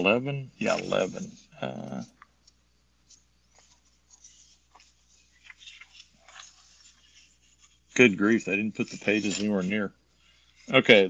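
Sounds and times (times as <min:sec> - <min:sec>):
paper pages rustling: 0:00.6 - 0:11.0.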